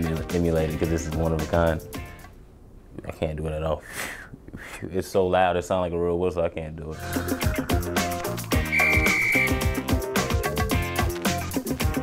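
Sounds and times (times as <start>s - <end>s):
background music with beat: 7.0s - 12.0s
loud two-finger whistle: 8.5s - 9.8s.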